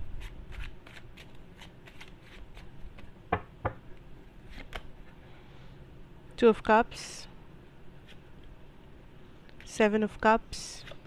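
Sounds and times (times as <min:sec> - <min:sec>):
cards being shuffled: 0:00.2 - 0:03.1.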